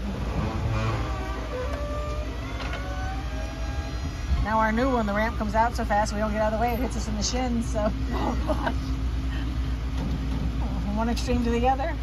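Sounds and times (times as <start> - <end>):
wheelchair lift motor whine: 0.0 - 8.0
bus engine idling: 0.0 - 12.0
platform squeaks: 0.2 - 5.8.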